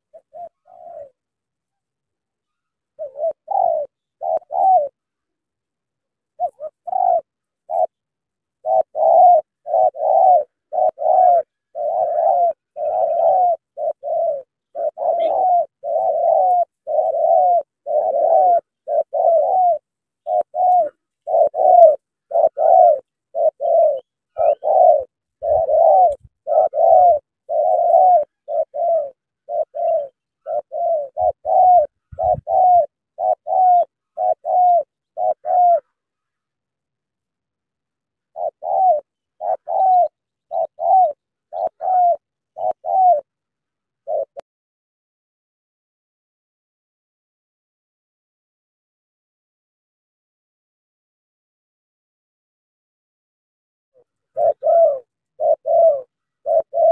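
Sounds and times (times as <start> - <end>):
dove cooing: 0.0 - 37.2, 37.8 - 44.4, 54.0 - 56.9.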